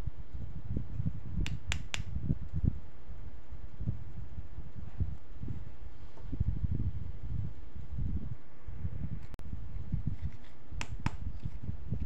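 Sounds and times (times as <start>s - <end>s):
sharp plastic clicks: 1.5s - 2.1s.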